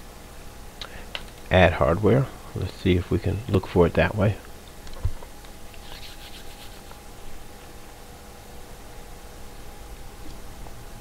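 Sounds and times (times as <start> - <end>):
faint steady hum: 0.0 - 11.0
soft scratching: 5.8 - 7.0.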